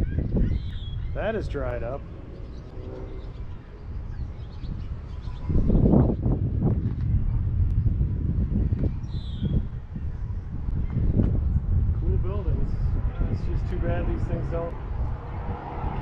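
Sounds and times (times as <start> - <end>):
bird chirping: 0.0 - 6.2, 8.6 - 11.2
low outdoor rumble: 0.0 - 16.0.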